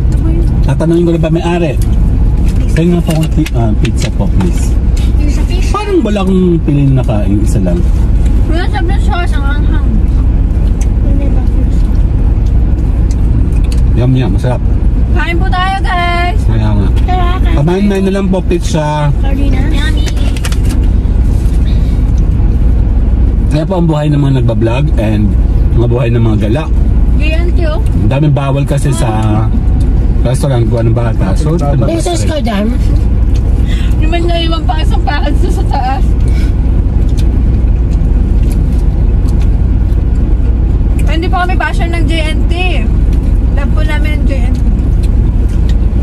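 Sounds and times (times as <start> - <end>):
car cabin rumble: 0.0 - 46.0.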